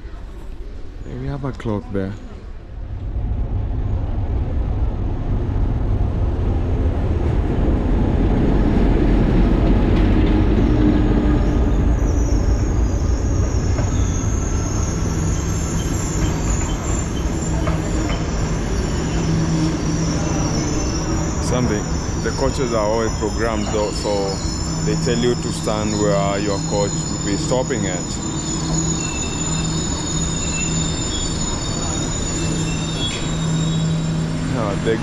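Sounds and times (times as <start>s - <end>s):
train wheels rumbling on rail: 2.1s - 35.0s
high-pitched brake squeal: 10.6s - 35.0s.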